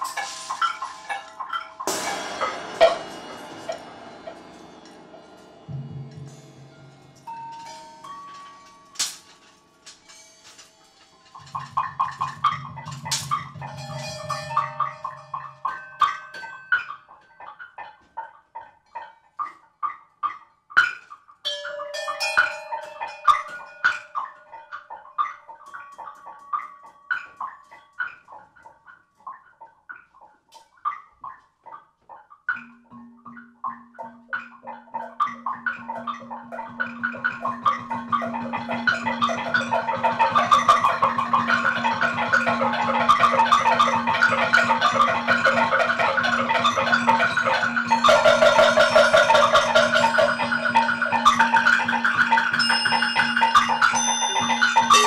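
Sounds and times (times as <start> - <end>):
dense improvised ensemble: 0.0 - 7.8, 37.0 - 55.0
mallet strikes on metal percussion: 0.0 - 16.7, 34.0 - 55.0.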